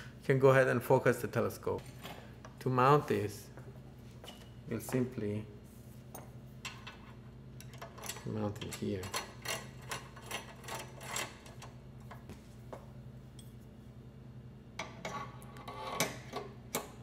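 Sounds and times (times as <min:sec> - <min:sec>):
metal parts clicking and tapping: 0:07.6 - 0:12.3.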